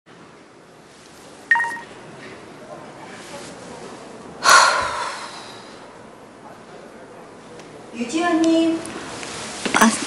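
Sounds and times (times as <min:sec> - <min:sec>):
phone beep: 0:01.5 - 0:01.9.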